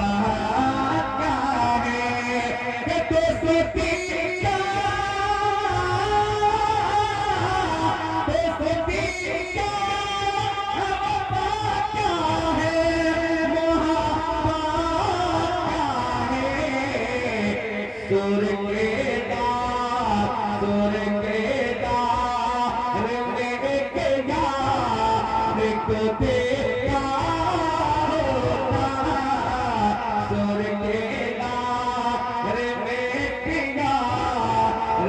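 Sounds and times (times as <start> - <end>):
man singing into a microphone: 0.0 - 35.0.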